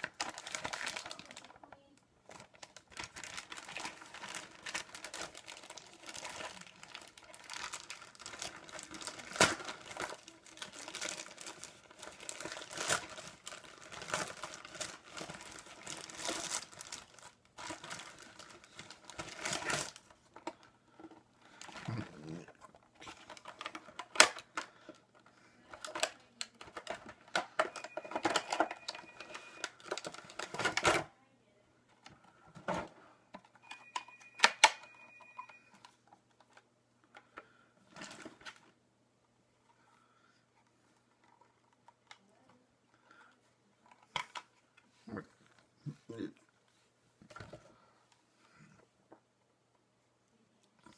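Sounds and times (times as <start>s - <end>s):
packaging crinkling: 0.0s - 31.0s.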